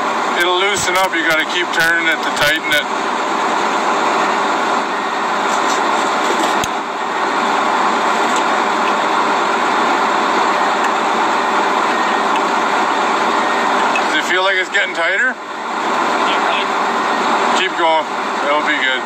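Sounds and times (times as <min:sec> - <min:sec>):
heavy equipment engine running: 0:00.0 - 0:19.0.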